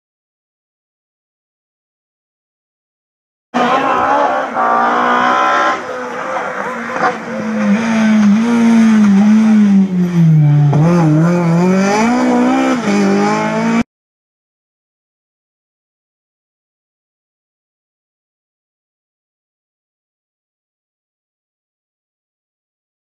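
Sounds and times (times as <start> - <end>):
rally car engine revving: 3.6 - 13.9.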